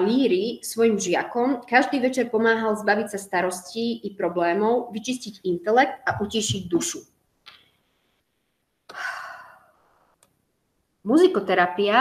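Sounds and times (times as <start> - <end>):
woman breathing in: 8.9 - 9.8.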